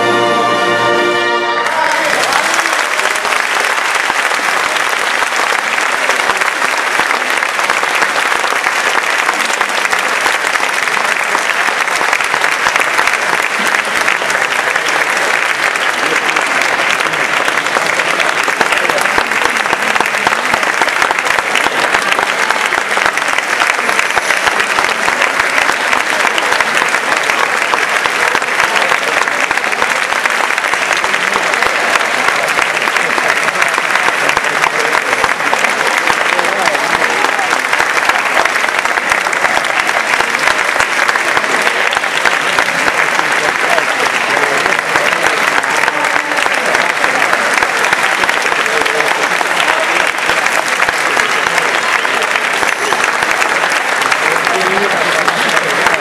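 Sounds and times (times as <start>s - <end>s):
audience applause: 0.0s - 56.0s.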